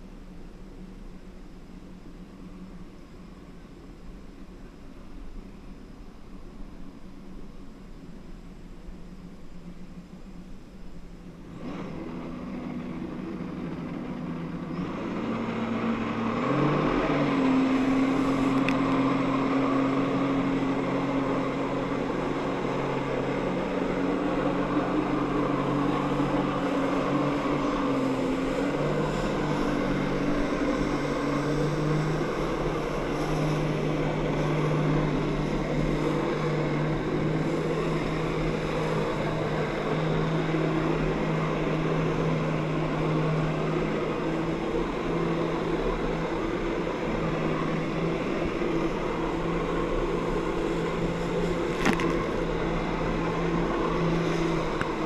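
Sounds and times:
jet ski engine revving: 11.3s - 55.0s.

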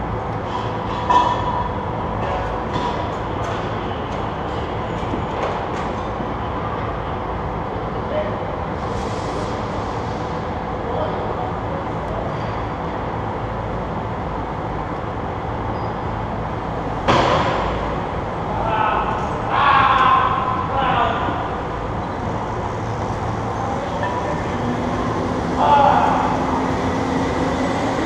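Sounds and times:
indoor hall rumble and hiss: 0.0s - 28.0s.

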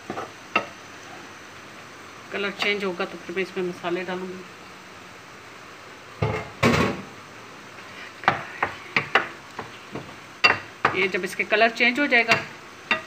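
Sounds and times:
spoon knocking on pan: 8.2s - 11.1s.

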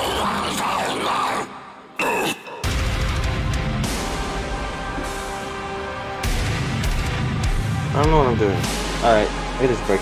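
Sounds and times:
death metal song: 0.0s - 10.0s.

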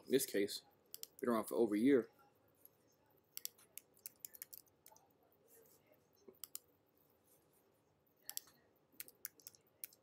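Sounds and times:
keyboard and mouse clicks: 3.4s - 5.0s, 6.4s - 6.7s, 8.2s - 10.0s.

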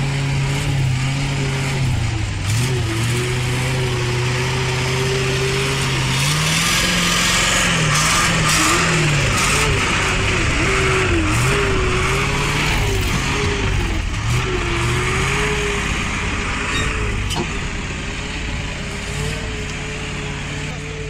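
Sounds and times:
truck engine labouring: 0.0s - 21.0s.

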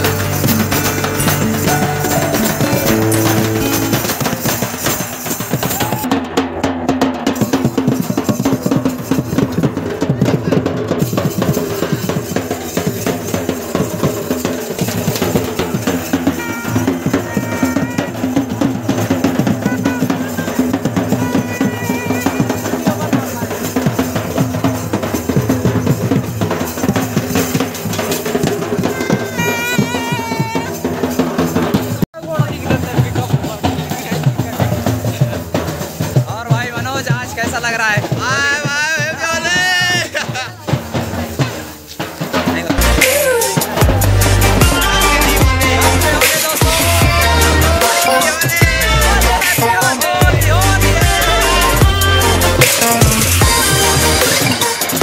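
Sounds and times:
steel pots beaten: 0.0s - 6.1s
snare drum: 0.0s - 55.0s
voices shouting: 42.8s - 55.0s.

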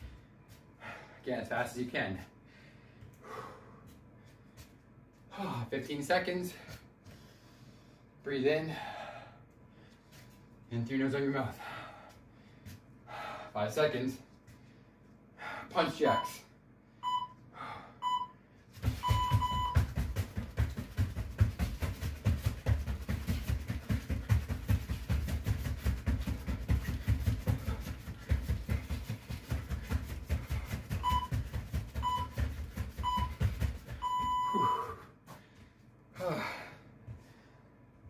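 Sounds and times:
heavy out-breath: 0.8s - 1.2s, 2.4s - 3.9s, 8.7s - 10.0s, 11.6s - 13.6s, 34.7s - 37.7s
interval timer beeps: 17.0s - 17.4s, 18.0s - 18.4s, 19.0s - 19.9s, 31.0s - 35.0s
feet thudding on floor: 18.8s - 34.7s.

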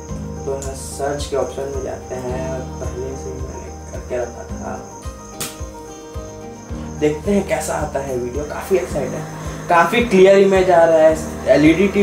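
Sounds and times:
sharp click: 5.4s - 5.7s
high-pitched whine: 8.8s - 12.0s.

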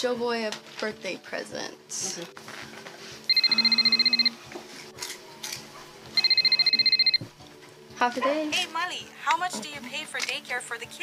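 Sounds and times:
mobile phone ringing: 3.3s - 4.5s, 6.2s - 7.3s.

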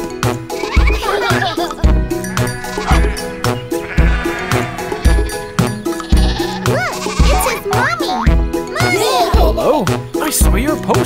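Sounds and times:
upbeat cartoon music with thumping beat: 0.0s - 11.0s
cartoon lamb bleating: 2.2s - 7.6s.

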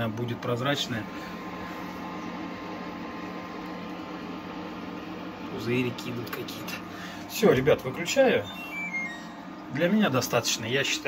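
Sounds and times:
distillation setup hum and hiss: 0.0s - 11.0s.

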